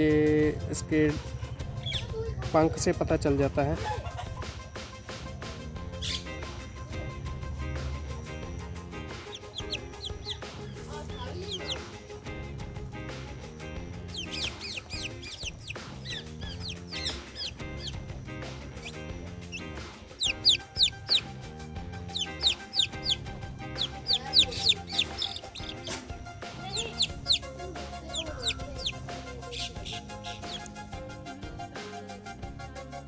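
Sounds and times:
background music: 0.0s - 33.0s
chick peeping: 1.7s - 2.1s, 9.1s - 12.0s, 14.0s - 18.2s, 18.8s - 21.3s, 22.1s - 30.8s.

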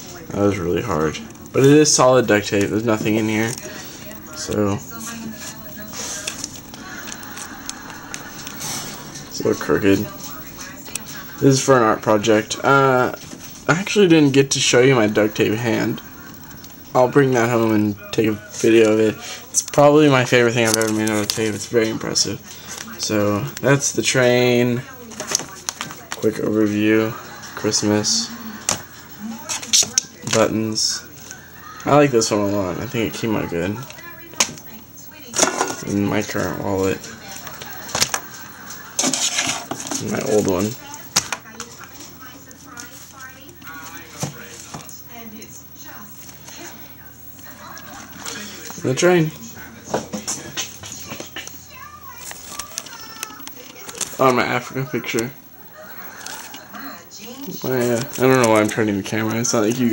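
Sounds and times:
person speaking: 0.0s - 59.9s
duct tape model rustling: 1.0s - 11.6s, 18.5s - 23.9s, 24.9s - 27.6s, 37.0s - 48.8s, 49.4s - 55.2s, 55.8s - 59.9s.

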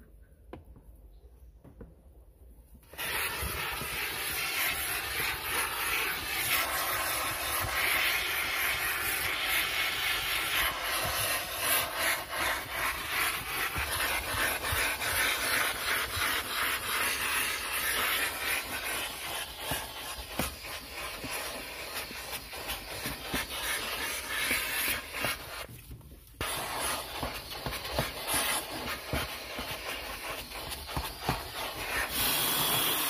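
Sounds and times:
carpet cleaner hissing: 2.8s - 25.7s, 26.4s - 33.0s
nozzle scrubbing carpet: 2.8s - 25.8s, 26.4s - 33.0s.

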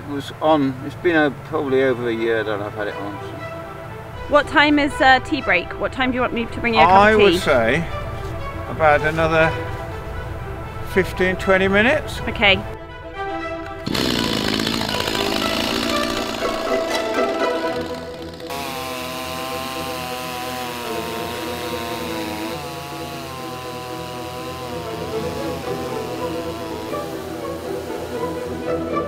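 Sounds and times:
classical string music: 0.9s - 29.0s
chainsaw running at full speed: 13.8s - 29.0s.

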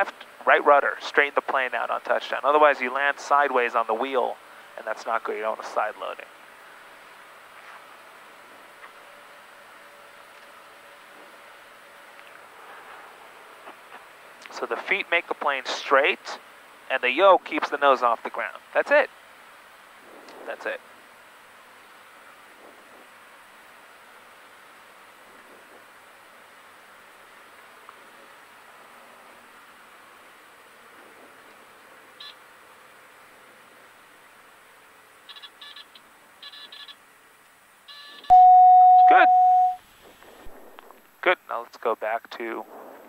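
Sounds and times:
airplane cabin noise: 0.0s - 19.0s, 19.9s - 32.2s, 38.3s - 43.0s
loud beep tone: 38.0s - 39.8s.

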